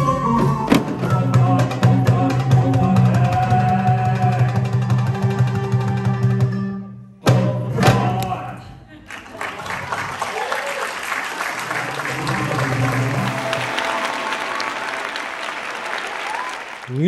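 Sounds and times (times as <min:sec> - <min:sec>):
audience applauding: 0:09.0 - 0:17.0.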